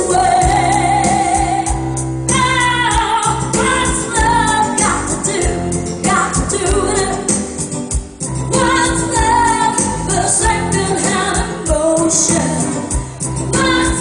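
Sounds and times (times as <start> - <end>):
woman singing: 0.0 - 7.4, 8.5 - 14.0
backing music with bass beat: 0.0 - 14.0.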